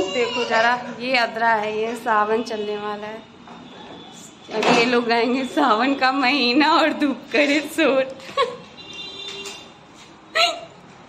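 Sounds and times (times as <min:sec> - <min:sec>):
woman laughing: 0:08.1 - 0:08.7, 0:10.4 - 0:10.7.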